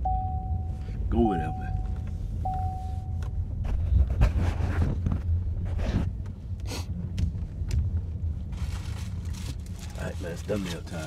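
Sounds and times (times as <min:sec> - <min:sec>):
car cabin road and engine rumble: 0:00.0 - 0:11.0.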